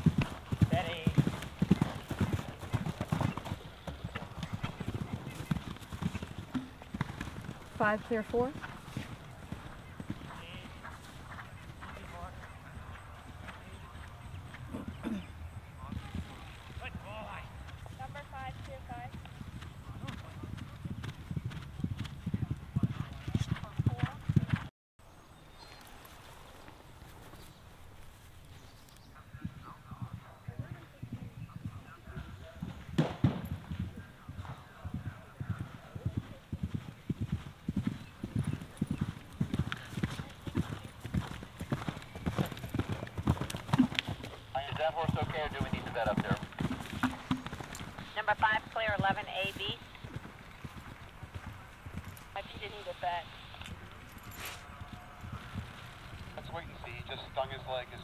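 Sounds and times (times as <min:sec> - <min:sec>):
horse galloping on turf: 0:00.0 - 0:15.0, 0:15.8 - 0:24.7, 0:29.3 - 0:57.9.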